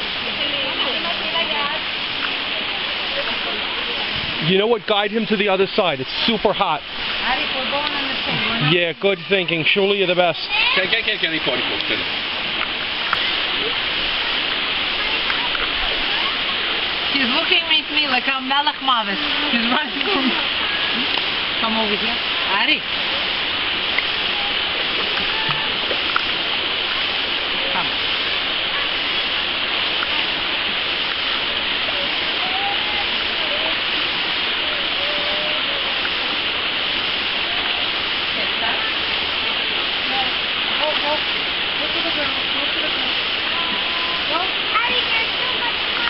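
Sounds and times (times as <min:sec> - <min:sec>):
stream rushing over rocks: 0:00.0 - 0:46.0.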